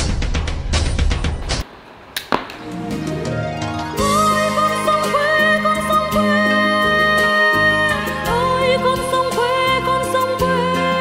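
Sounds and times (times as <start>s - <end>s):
shuttlecock kicked with foot taps: 2.2s - 2.6s
background music with sustained tones: 2.6s - 11.0s.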